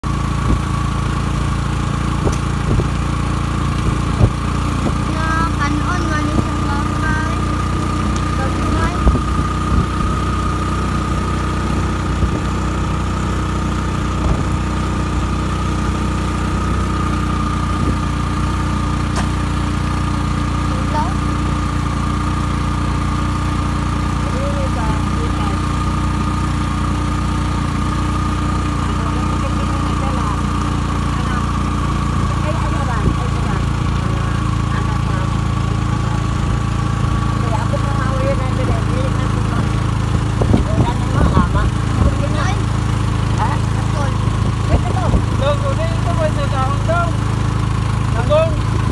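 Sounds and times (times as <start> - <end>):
vehicle engine rumble and whine: 0.0 - 48.9.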